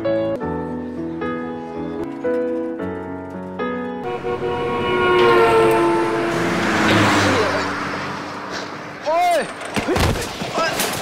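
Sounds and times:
car approaching: 2.0s - 9.8s
car horn: 4.0s - 8.0s.

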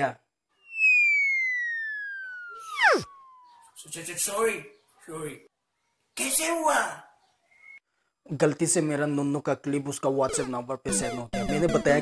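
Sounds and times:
comic descending whistle: 0.6s - 3.8s.

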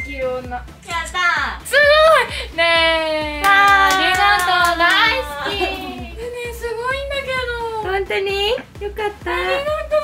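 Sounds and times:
hand clapping: 3.4s - 6.1s.

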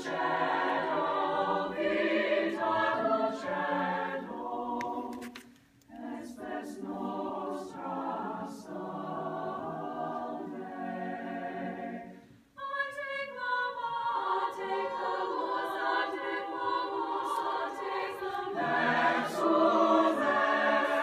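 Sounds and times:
mixed choir singing unaccompanied: 0.0s - 21.0s.

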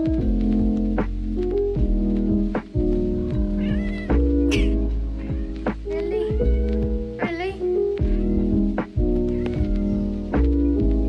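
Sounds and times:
background music: 0.0s - 11.0s
cat meowing: 3.2s - 10.3s.

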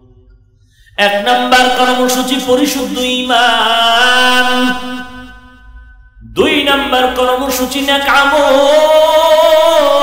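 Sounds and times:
man chanting a sermon: 1.0s - 5.6s, 6.2s - 10.0s.

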